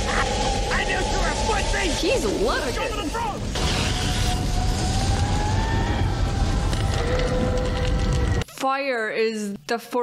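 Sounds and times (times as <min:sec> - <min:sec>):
rumble of burning flames: 0:00.0 - 0:08.4.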